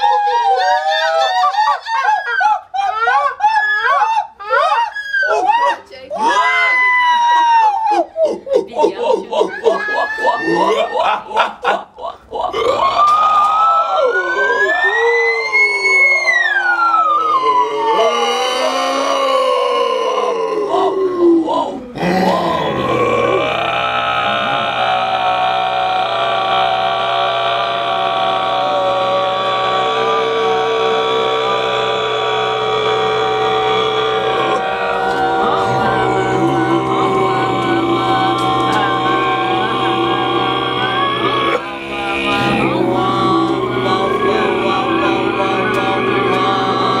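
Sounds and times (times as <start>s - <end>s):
wordless group singing: 22.0s - 47.0s.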